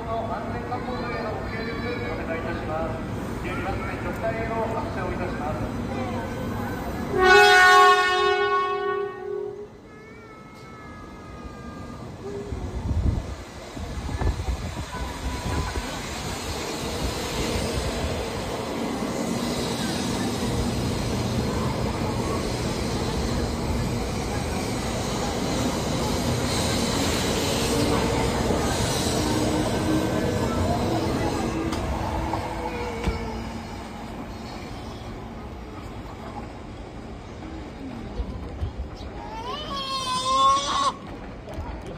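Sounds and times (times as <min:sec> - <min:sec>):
loud train horn blast: 0:07.1 - 0:09.7
train running noise: 0:10.5 - 0:41.9.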